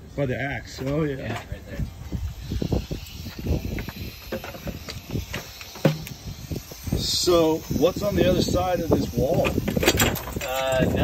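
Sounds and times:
rattlesnake rattling: 0:01.9 - 0:11.0.

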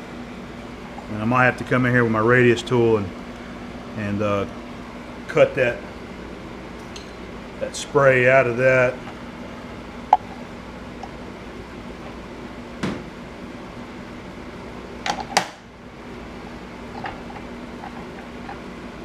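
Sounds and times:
steady machine hum: 0:00.0 - 0:19.0.

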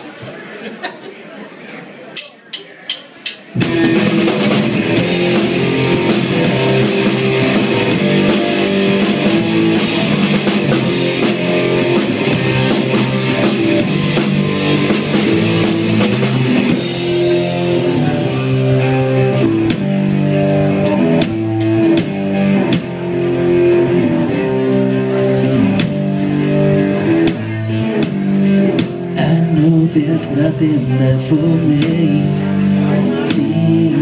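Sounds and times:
live rock band playing: 0:03.0 - 0:34.0.

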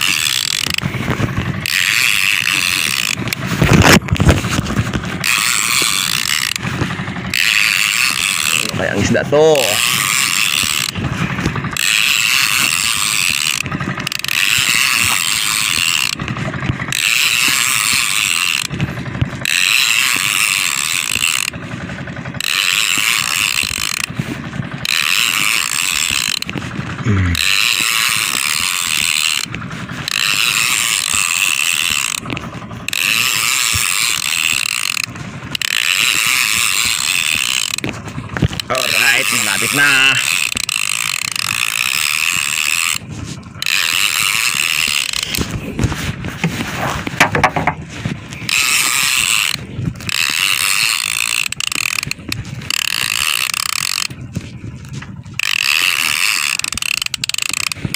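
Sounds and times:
fishing reel ratcheting: 0:00.0 - 0:57.9.

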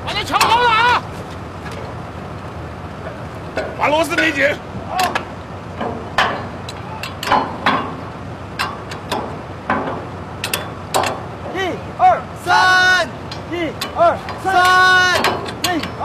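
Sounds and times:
men shouting a work chant: 0:00.0 - 0:01.1, 0:11.4 - 0:16.0
metal clanks and knocks: 0:03.0 - 0:11.6, 0:13.1 - 0:16.0.

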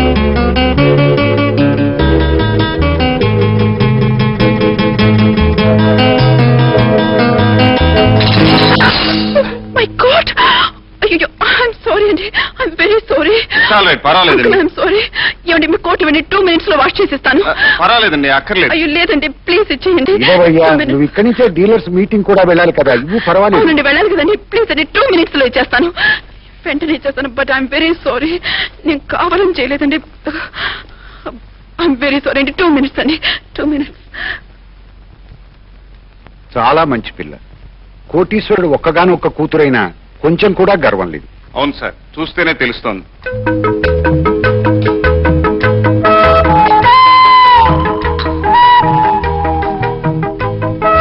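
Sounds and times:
low hiss: 0:00.0 - 0:51.0.

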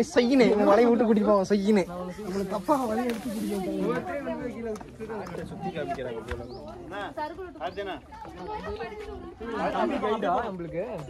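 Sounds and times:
group of people talking: 0:00.0 - 0:11.0.

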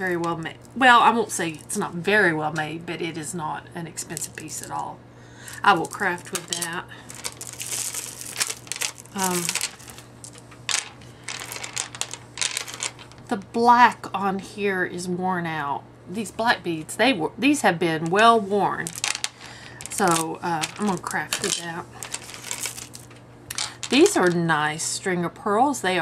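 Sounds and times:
beads clicking on wooden table: 0:05.5 - 0:13.2, 0:18.9 - 0:24.1.

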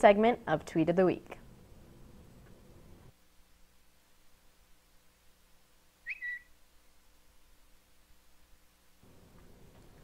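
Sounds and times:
whistled bird tweet effect: 0:06.0 - 0:06.6.

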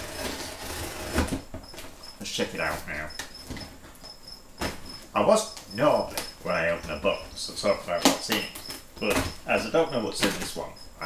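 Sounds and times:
cardboard scraping and rustling: 0:00.0 - 0:02.0.

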